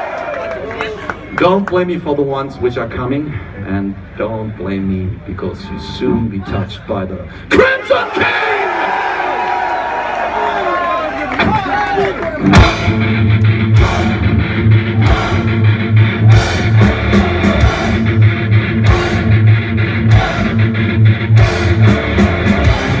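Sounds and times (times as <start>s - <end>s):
crowd noise: 0.0s - 23.0s
heavy metal band playing: 11.4s - 23.0s.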